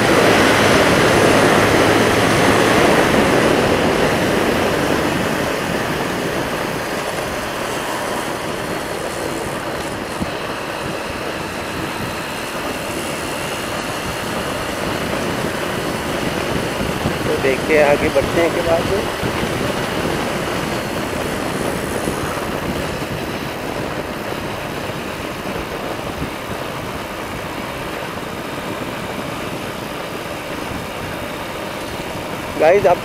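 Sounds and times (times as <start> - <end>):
motorcycle engine: 0.0 - 33.0
wind rushing over microphone: 0.0 - 33.0.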